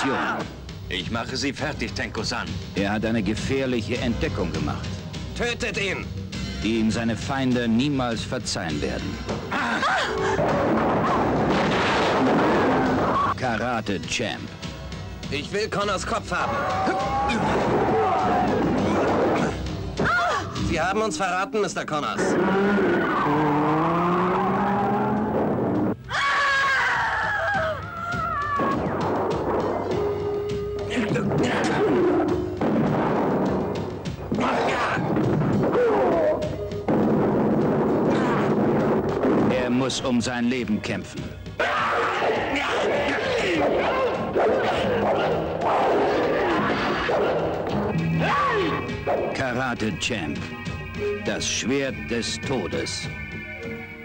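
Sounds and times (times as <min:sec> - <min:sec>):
music: 0:00.0 - 0:22.4, 0:24.4 - 0:54.0
fight blows and crashes: 0:10.4 - 0:13.3, 0:32.6 - 0:39.7
voices crying out: 0:16.3 - 0:20.6, 0:22.2 - 0:24.9, 0:26.1 - 0:28.9, 0:41.6 - 0:49.4
car engine revving: 0:22.2 - 0:26.0.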